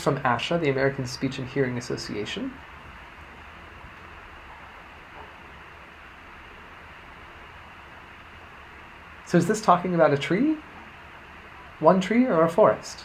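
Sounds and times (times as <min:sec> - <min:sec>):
faint low hum: 0:00.0 - 0:13.0
steady hiss: 0:00.0 - 0:13.0.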